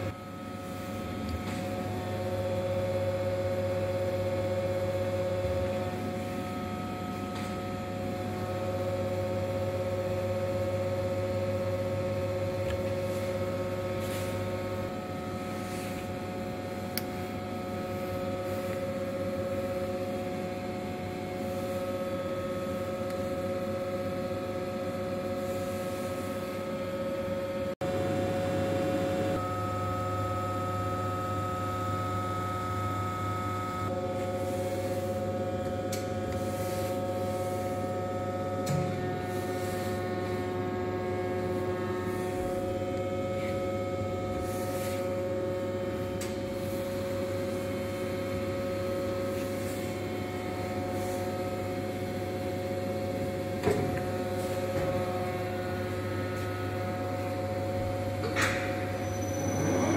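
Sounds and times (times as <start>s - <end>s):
grinding machine humming: 0.0s - 59.9s.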